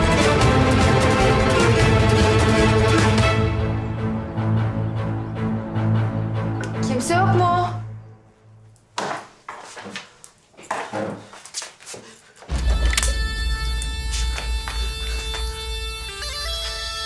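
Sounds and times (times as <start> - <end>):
droning music with held notes: 0.0 - 8.4, 12.5 - 17.0.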